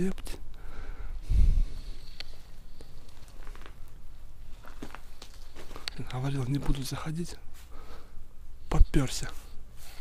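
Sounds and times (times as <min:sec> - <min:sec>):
footsteps on rubble: 0:02.8 - 0:07.0.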